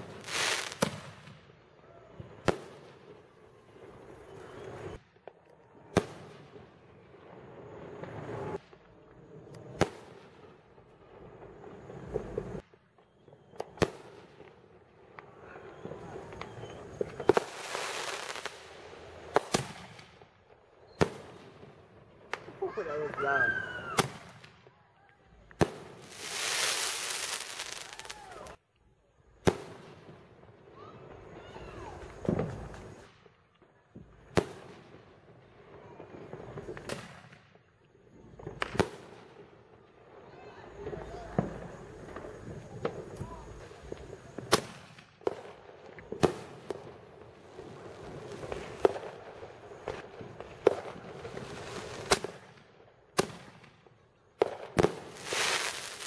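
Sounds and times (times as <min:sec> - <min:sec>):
firework report: 0:00.0 - 0:56.0.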